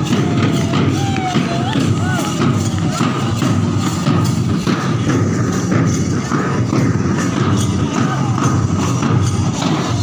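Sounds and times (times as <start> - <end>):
marching drums: 0.0 - 10.0.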